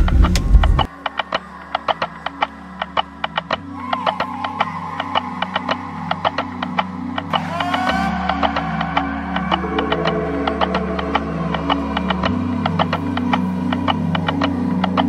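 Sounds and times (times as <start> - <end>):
loud low rumble: 0.0 - 0.9
music with ticking beat: 0.0 - 15.0.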